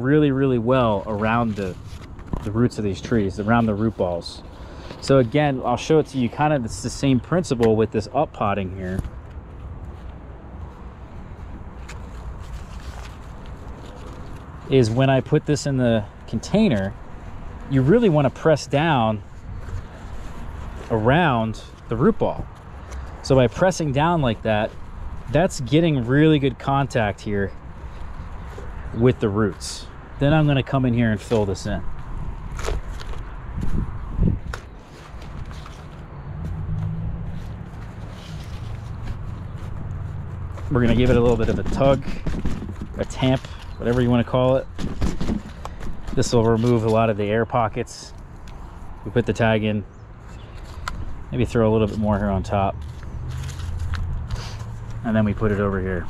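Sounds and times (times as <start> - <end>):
low outdoor rumble: 0.0 - 50.0
rustling of soil in plastic pot: 0.1 - 4.4, 11.8 - 15.7, 17.7 - 31.8, 37.3 - 47.8.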